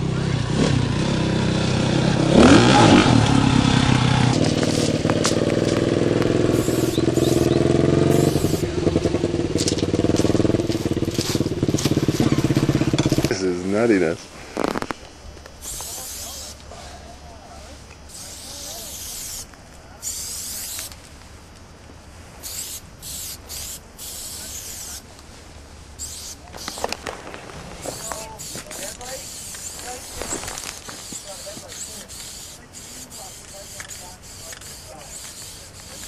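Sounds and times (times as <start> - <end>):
spray can hissing: 2.4 - 8.7, 9.6 - 13.3, 15.6 - 16.7, 18.0 - 21.0, 22.4 - 25.0, 26.0 - 27.1, 27.8 - 36.0.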